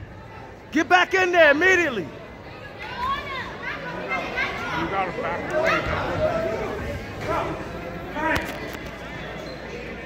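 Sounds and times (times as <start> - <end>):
murmur of crowd in hall: 0.0 - 10.0.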